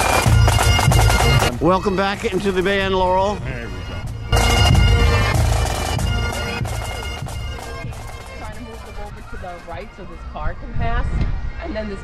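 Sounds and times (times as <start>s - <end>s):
drum beats: 0.0s - 10.0s
bagpipes playing: 0.0s - 10.1s.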